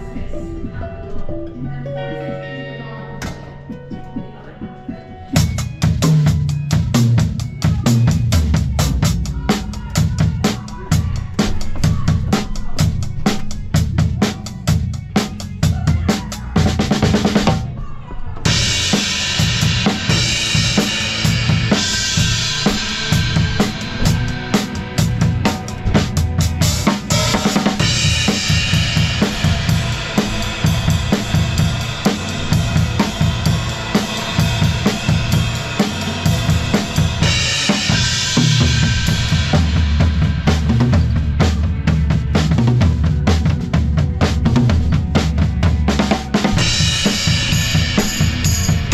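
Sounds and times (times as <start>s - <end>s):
drum kit playing: 5.4s - 17.7s, 18.4s - 48.9s.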